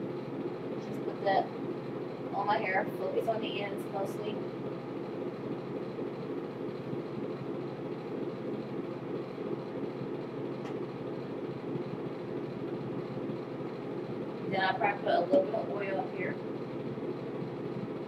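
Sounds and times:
room noise hum: 0.0s - 18.0s.

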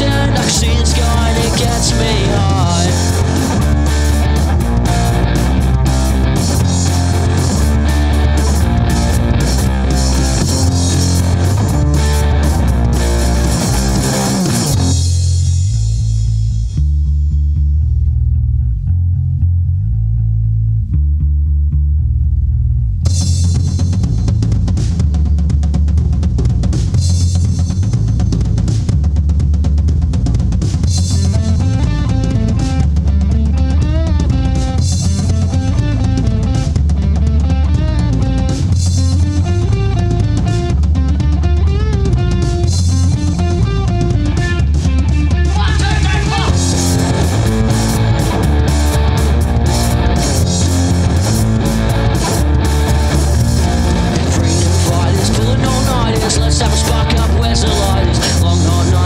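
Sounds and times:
lead guitar melody: 0.0s - 15.2s, 31.3s - 59.0s
drums and cymbals: 0.0s - 16.8s, 23.1s - 59.0s
electric guitars: 0.0s - 16.8s, 30.7s - 59.0s
bass guitar: 0.0s - 59.0s.

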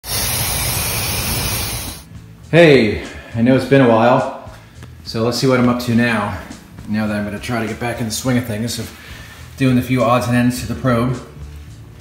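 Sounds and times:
aerosol spray hissing: 0.0s - 2.1s.

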